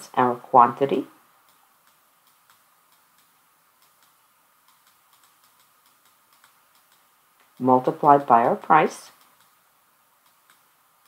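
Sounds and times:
stylus tapping on a screen: 0:01.4 - 0:08.2, 0:09.1 - 0:09.6, 0:10.2 - 0:10.8.

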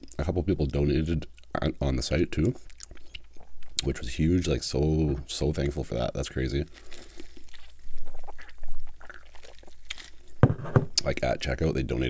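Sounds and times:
person gulping soda: 0:07.4 - 0:10.4.

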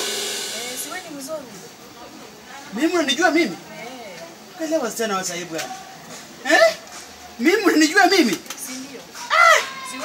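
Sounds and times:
crash cymbal hiss: 0:00.0 - 0:01.6.

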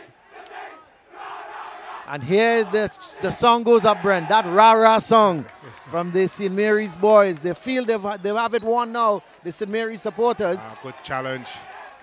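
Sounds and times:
crowd chanting: 0:00.0 - 0:07.2, 0:09.9 - 0:12.0.

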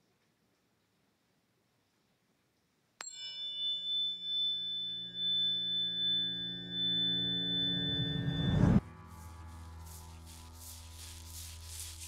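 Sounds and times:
sustained multi-pitch ringing tone: 0:03.0 - 0:10.4
low rushing swell: 0:05.0 - 0:11.6.

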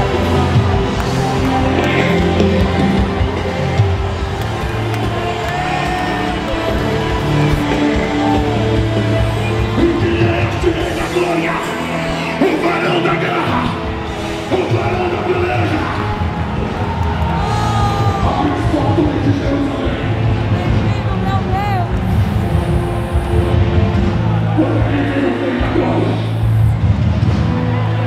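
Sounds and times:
church worship music: 0:00.0 - 0:21.2
congregation shouting and singing: 0:00.0 - 0:28.0.

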